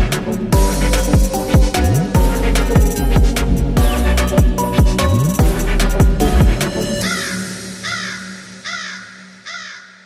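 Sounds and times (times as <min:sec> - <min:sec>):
electronic music with deep bass: 0:00.0 - 0:08.7
bird calling: 0:06.8 - 0:10.0.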